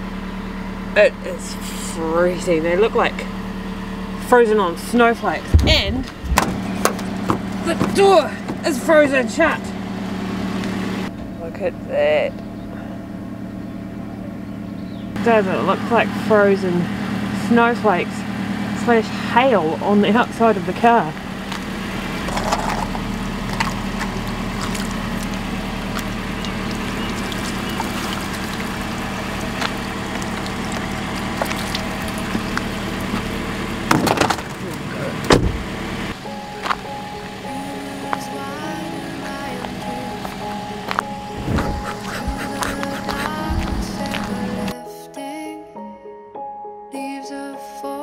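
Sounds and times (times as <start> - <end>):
car engine idling: 0.0 - 44.7
sharp knocks: 5.5 - 8.7
gentle background music: 36.2 - 48.0.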